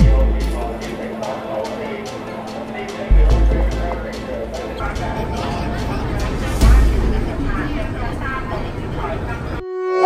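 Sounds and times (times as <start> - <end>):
indistinct voices: 0.0 - 9.7
synthesized jingle tone: 3.1 - 8.0.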